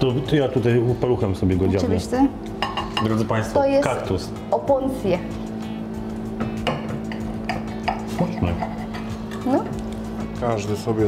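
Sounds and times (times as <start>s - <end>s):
steady low hum: 0.0s - 11.0s
cutlery clinking against plates: 2.6s - 3.3s, 6.4s - 9.8s.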